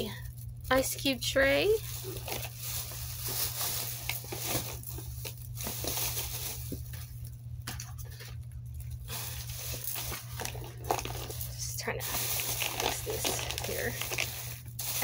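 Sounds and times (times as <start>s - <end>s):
low steady hum: 0.0s - 15.0s
plastic bag rustling: 0.0s - 15.0s.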